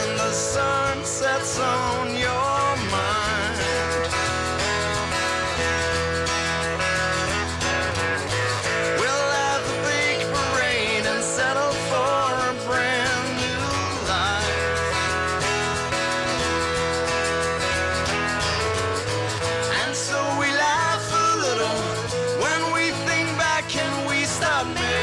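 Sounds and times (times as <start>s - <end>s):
band playing guitars: 0.0s - 25.0s
bending lead guitar notes: 0.0s - 25.0s.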